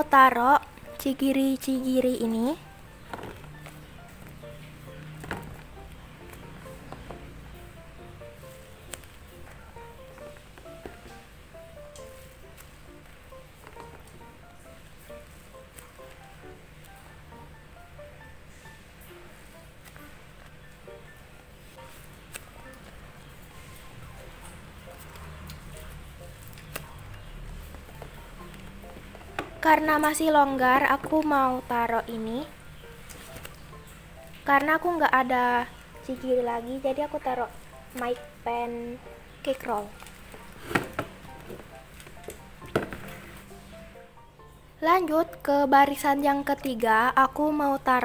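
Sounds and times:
soft melodic background music: 0.0 - 48.0
paper crinkles and taps: 33.0 - 33.7.

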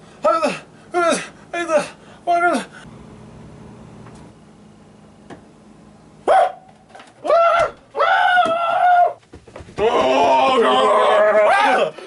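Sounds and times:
low steady hum: 0.0 - 8.0.

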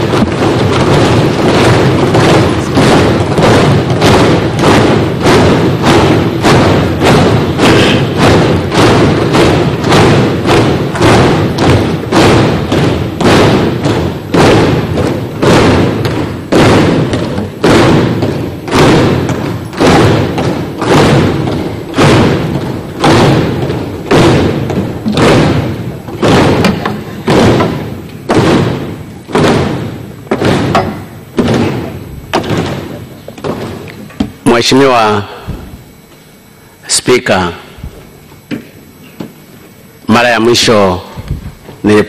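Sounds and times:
rhythmic pounding on desks: 0.0 - 42.0.

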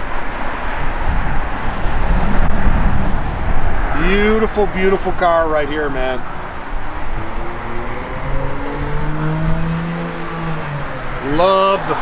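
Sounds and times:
vehicle engine humming: 0.0 - 12.0
low rumble: 1.0 - 4.0.

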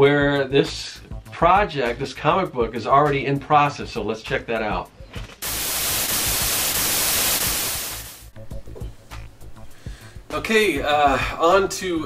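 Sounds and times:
quiet background music: 0.0 - 5.4, 8.2 - 12.0
static hiss: 5.4 - 8.3.

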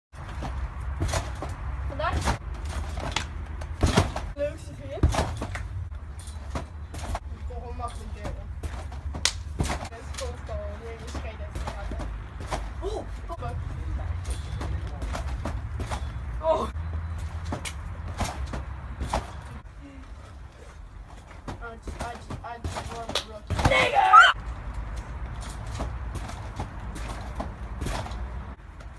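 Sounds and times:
thumps of trampoline landings: 0.2 - 7.2, 7.9 - 10.3, 11.0 - 13.0, 14.4 - 19.5, 21.1 - 24.4, 25.4 - 28.4.

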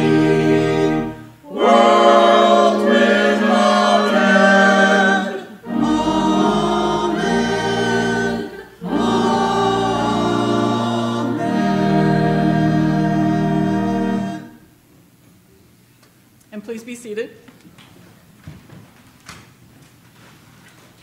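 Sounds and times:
group singing a hymn: 0.0 - 14.6.

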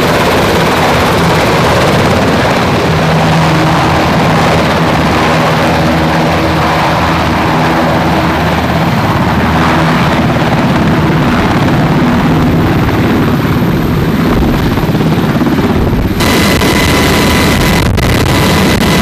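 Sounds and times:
helicopter rotor and turbine: 0.0 - 19.0
steady low hums: 12.2 - 19.0.

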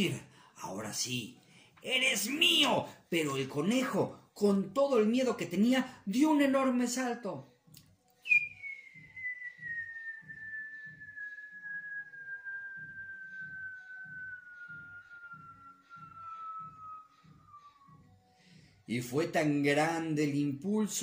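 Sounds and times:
man whistling a descending note: 8.2 - 18.2.

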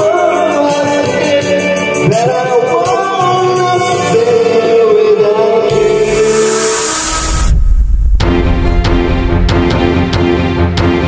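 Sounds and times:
man singing karaoke: 0.0 - 6.9
rushing whoosh: 5.7 - 10.5
deep rumble: 5.7 - 10.6.

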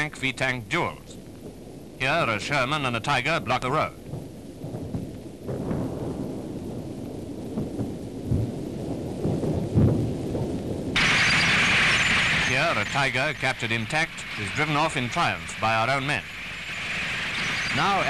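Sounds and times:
loud steady hiss: 0.0 - 18.0
low rumble with heavy thuds: 1.1 - 17.8.

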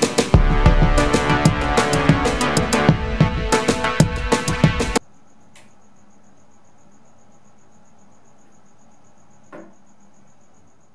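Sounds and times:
cricket chirping: 5.0 - 10.9.

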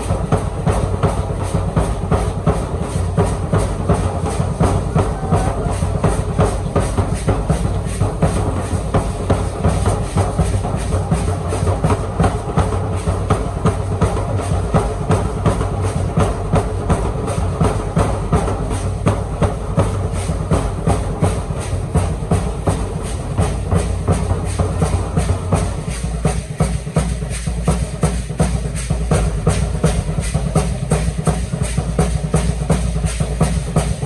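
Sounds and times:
large drum beaten quickly: 0.0 - 34.0.

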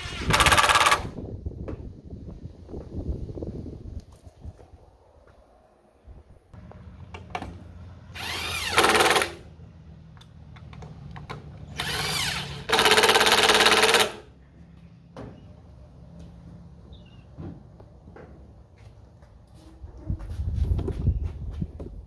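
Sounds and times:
cordless driver driving screws: 8.2 - 9.4, 10.6 - 14.2.

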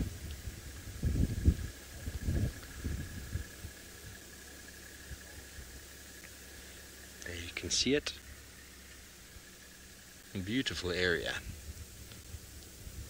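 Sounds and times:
wind buffeting microphone: 0.0 - 5.8, 11.0 - 13.0.

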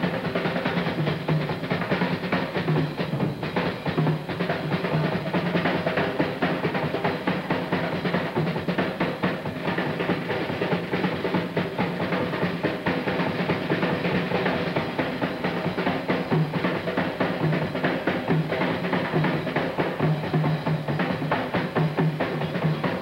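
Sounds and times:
jazz drum solo: 0.0 - 23.0.

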